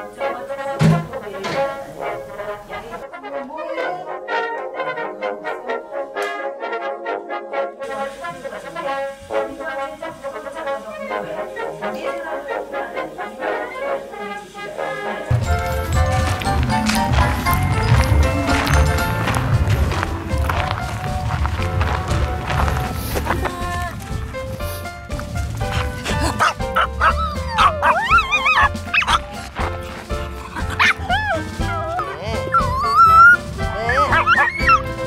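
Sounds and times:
upbeat background music: 0:00.0 - 0:35.0
small dog whining and yipping: 0:26.4 - 0:29.2, 0:30.5 - 0:34.9.

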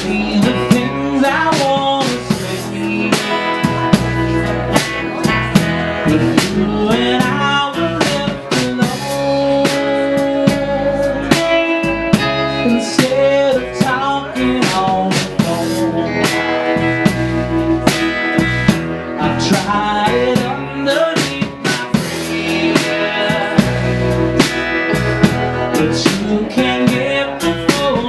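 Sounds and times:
drums playing steady beat: 0:00.0 - 0:28.0
electric guitar: 0:00.0 - 0:28.0
man singing: 0:00.0 - 0:28.0
strummed acoustic guitar: 0:00.0 - 0:28.0.

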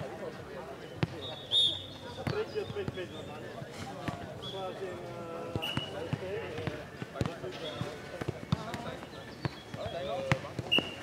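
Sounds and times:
ball thudding on clay court: 0:05.5 - 0:11.0.

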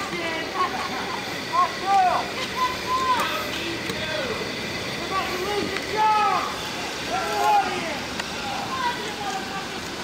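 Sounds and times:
outdoor background noise: 0:00.0 - 0:10.0
people talking indistinctly: 0:00.0 - 0:10.0.

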